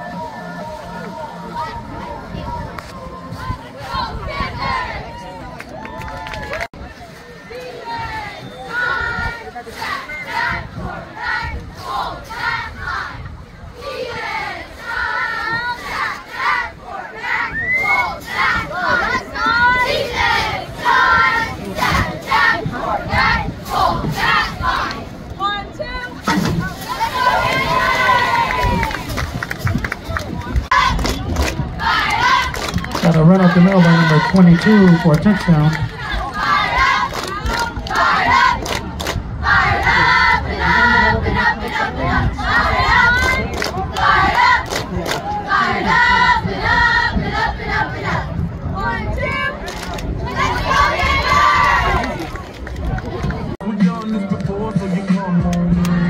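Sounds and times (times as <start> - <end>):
cheerleaders shouting a cheer: 26.8 - 29.1.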